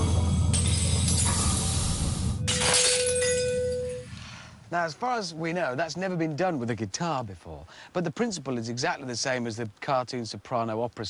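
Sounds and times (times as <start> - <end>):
wine glass shattering: 2.5 - 4.2.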